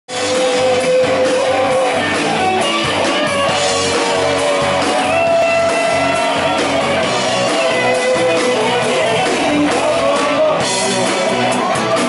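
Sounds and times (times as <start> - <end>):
person singing: 0.1 - 12.0
rock band playing: 0.1 - 12.0.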